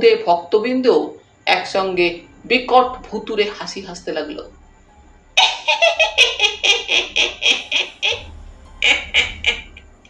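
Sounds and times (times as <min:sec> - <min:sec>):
high-pitched cackling laughter: 0:05.4 - 0:09.8.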